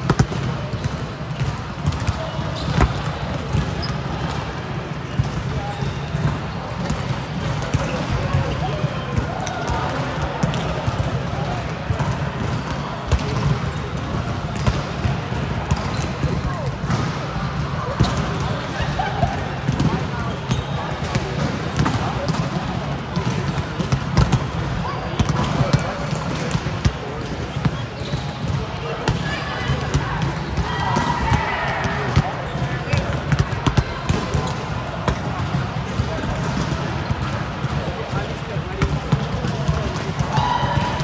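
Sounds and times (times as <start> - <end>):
indistinct chatter in a hall: 0.0 - 41.0
volleyballs hit and bouncing: 0.0 - 41.0.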